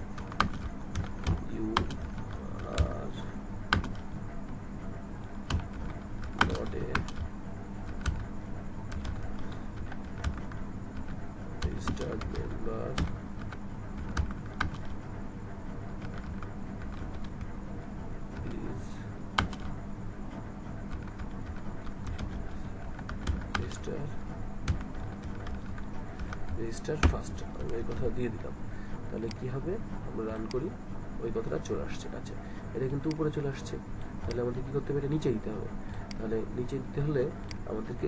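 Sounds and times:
low steady hum: 0:00.0 - 0:38.0
typing on computer keyboard: 0:00.2 - 0:03.0, 0:03.7 - 0:04.0, 0:05.5 - 0:08.3, 0:08.9 - 0:15.0, 0:16.0 - 0:17.5, 0:19.4 - 0:19.7, 0:20.9 - 0:23.8, 0:24.6 - 0:28.1.

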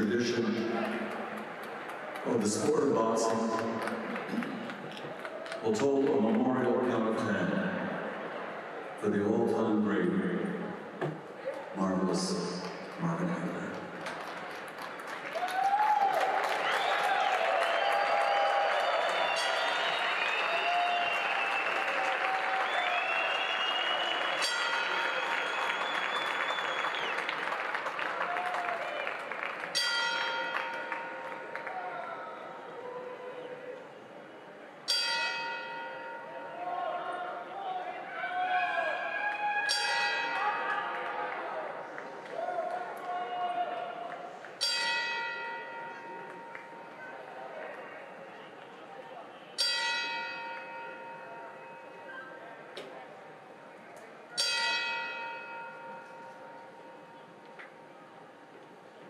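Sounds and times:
crowd murmuring in a hall: 0:00.0 - 0:16.2, 0:31.2 - 0:35.0, 0:45.8 - 0:59.0
boxing ring bell ringing: 0:24.4 - 0:25.6, 0:29.8 - 0:31.5, 0:34.9 - 0:36.5, 0:39.7 - 0:40.9, 0:44.6 - 0:46.9, 0:49.6 - 0:52.1, 0:54.4 - 0:57.2.

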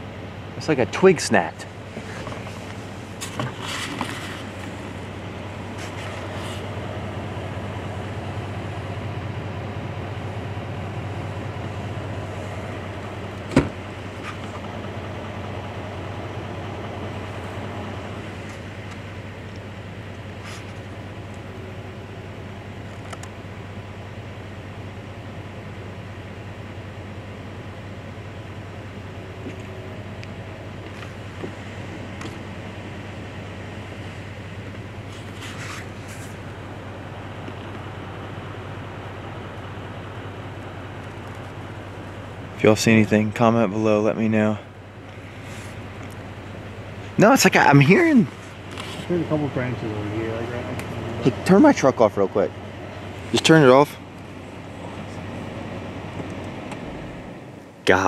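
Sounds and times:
truck engine idling: 0:00.0 - 0:58.0.

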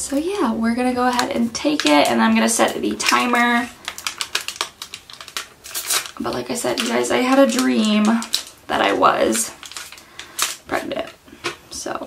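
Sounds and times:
rustling: 0:02.6 - 0:10.7.

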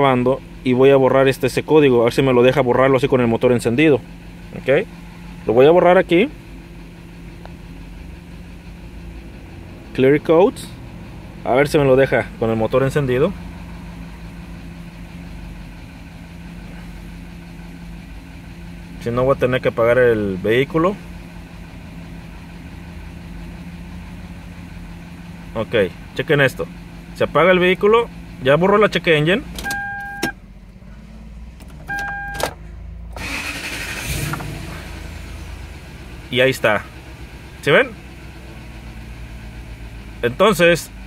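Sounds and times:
car engine idling: 0:00.0 - 0:41.0
short electronic beeps: 0:29.6 - 0:30.4, 0:31.9 - 0:32.5.

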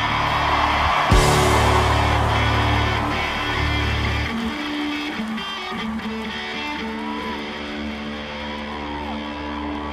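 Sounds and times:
bass and drums: 0:00.0 - 0:05.4
electric guitar sustained notes: 0:00.8 - 0:09.9.

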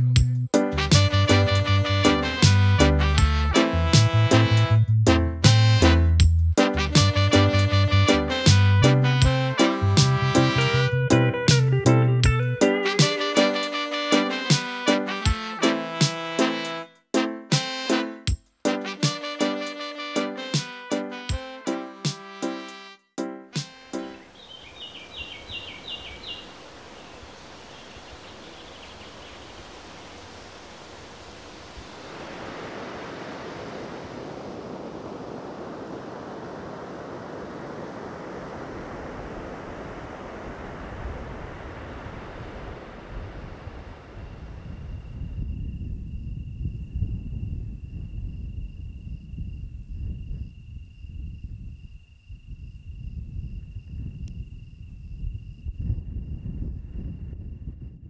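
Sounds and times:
music: 0:00.0 - 0:24.3
cricket trilling: 0:24.2 - 0:33.2, 0:42.8 - 0:57.3
wind rumbling on microphone: 0:24.3 - 0:58.0
surf washing on beach: 0:25.4 - 0:44.9.

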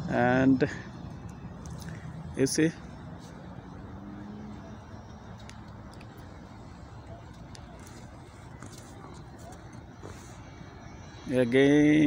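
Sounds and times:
low city rumble: 0:00.0 - 0:12.0.

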